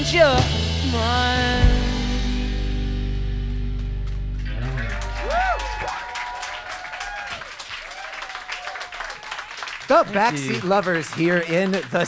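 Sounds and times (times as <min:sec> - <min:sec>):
audience applause and cheering: 0:03.8 - 0:12.0.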